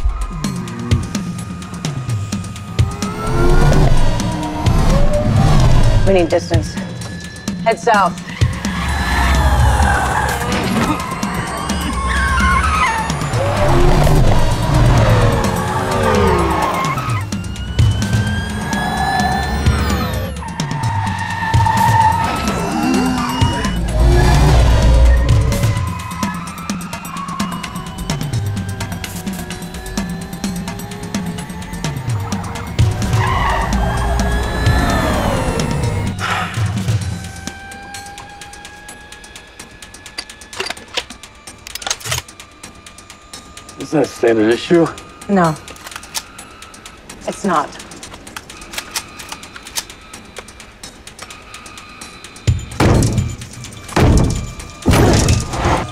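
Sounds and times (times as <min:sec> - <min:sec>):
cars speeding: 0:00.0 - 0:07.2, 0:08.1 - 0:39.0
orchestral film score: 0:00.0 - 0:55.9
tyres squealing: 0:02.4 - 0:38.6
tyre squeal: 0:08.3 - 0:14.6, 0:18.3 - 0:27.6
pistol loading clicks: 0:40.2 - 0:42.4, 0:45.7 - 0:46.3, 0:48.1 - 0:50.5.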